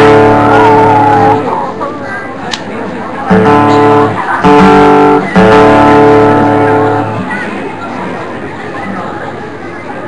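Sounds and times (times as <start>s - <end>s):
amplified guitar chords ringing: 0.0s - 1.5s, 3.3s - 7.3s.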